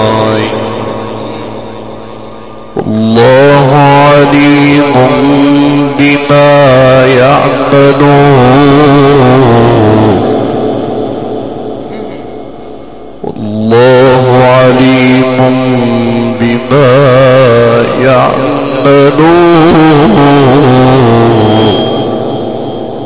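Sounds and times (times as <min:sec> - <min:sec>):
man reciting melodically: 0:00.0 - 0:10.5, 0:13.2 - 0:22.2.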